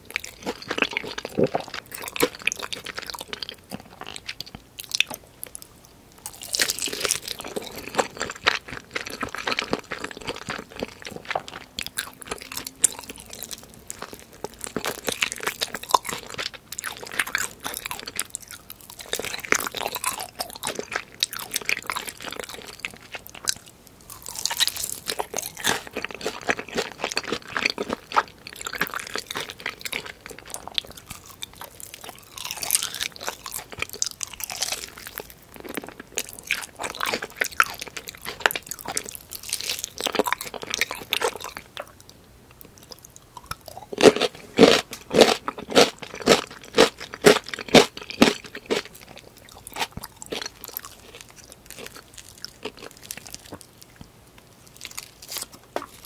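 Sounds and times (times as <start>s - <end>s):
crunching and chewing fried chicken: 0.0s - 56.0s.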